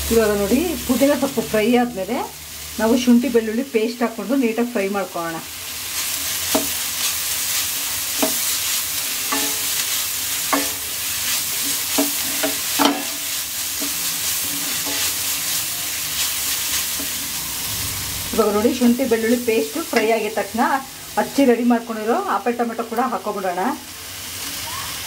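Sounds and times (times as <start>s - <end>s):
food sizzling in a pan: 0.0s - 25.0s
wooden spatula scraping a pan: 6.0s - 17.5s.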